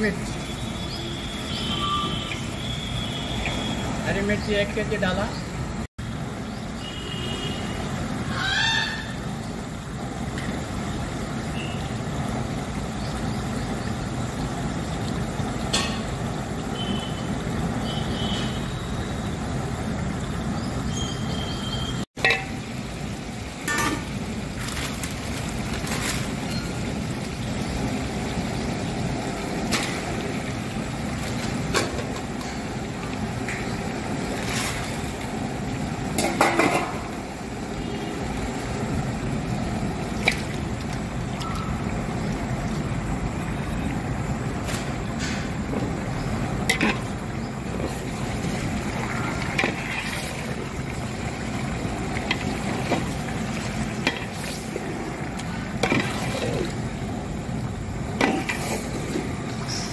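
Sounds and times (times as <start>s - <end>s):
metal ladle clinking on pot: 22.2s - 22.6s, 23.7s - 24.1s
paste sizzling in oil: 46.2s - 57.6s.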